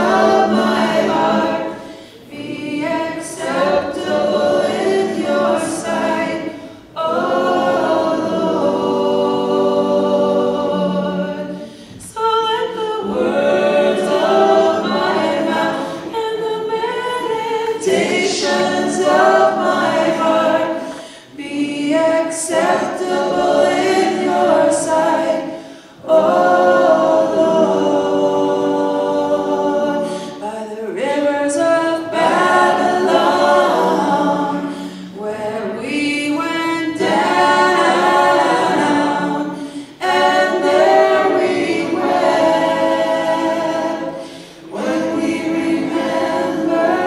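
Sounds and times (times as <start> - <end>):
group singing unaccompanied: 0.0 - 47.0.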